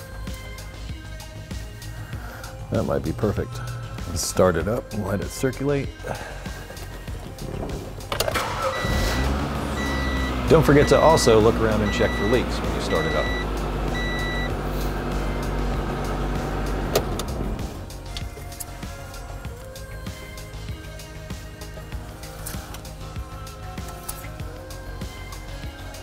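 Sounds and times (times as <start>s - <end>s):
light background music: 0.0s - 26.0s
car engine idling: 6.0s - 24.6s
short electronic beep: 9.8s - 14.6s.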